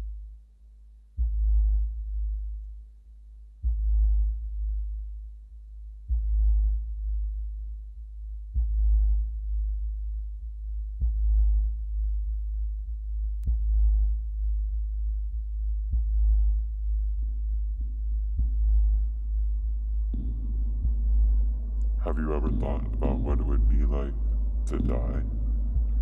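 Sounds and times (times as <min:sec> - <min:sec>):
deep electronic pulse: 0:03.6 - 0:26.0
low drone: 0:18.0 - 0:26.0.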